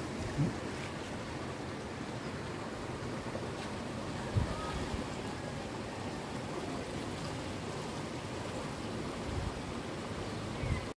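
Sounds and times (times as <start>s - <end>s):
steady outdoor noise: 0.0s - 10.9s.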